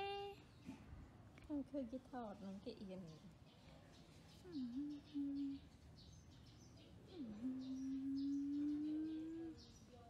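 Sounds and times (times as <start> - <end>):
faint high bird chirps: 3.5 - 10.0
person humming: 4.5 - 5.6, 7.1 - 9.6.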